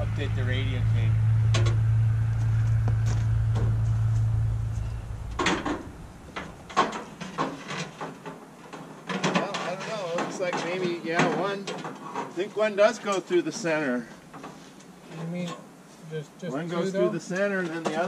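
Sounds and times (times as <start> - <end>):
muffled voices: 0.0 - 1.3
vehicle engine drone: 0.0 - 7.4.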